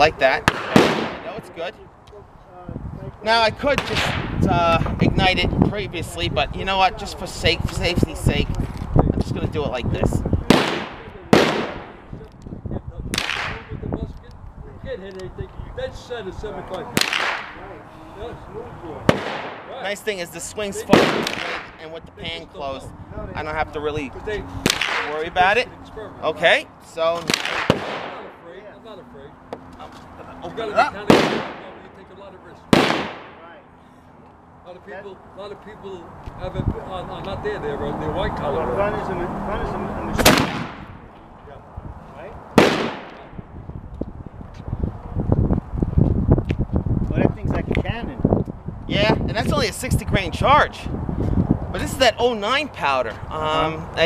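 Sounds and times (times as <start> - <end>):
gunshot with echo: 0.4 - 1.4, 3.8 - 4.3, 10.5 - 12.1, 13.1 - 13.7, 17.0 - 17.6, 19.1 - 19.7, 20.9 - 21.8, 24.6 - 25.1, 27.3 - 28.3, 31.1 - 31.8, 32.7 - 33.4, 40.2 - 40.9, 42.6 - 43.3
wind rumble on microphone: 0.8 - 17.0, 17.6 - 19.4, 22.2 - 26.1, 36.0 - 52.2
man's voice: 2.5 - 10.3, 19.7 - 32.7, 51.8 - 54.0.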